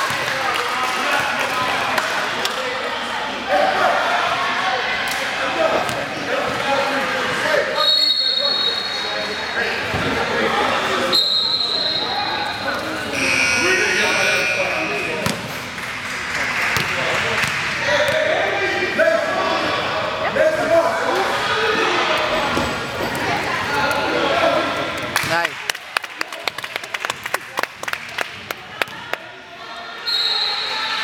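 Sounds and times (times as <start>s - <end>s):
voices echoing in gym: 0.0s - 31.0s
high-pitched squeals: 11.3s - 15.2s
ball bouncing on hardwood court: 16.8s - 17.6s.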